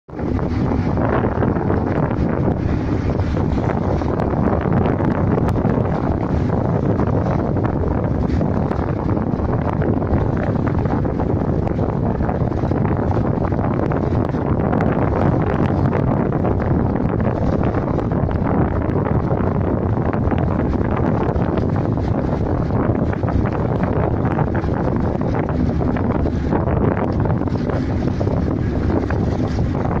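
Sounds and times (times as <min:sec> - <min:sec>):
boat engine rumble: 0:00.0 - 0:30.0
wind buffeting microphone: 0:00.0 - 0:30.0.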